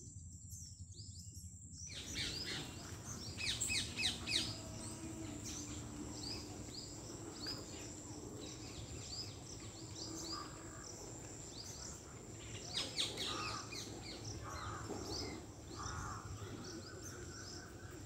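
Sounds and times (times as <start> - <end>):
bird chirping: 0.4 - 18.0.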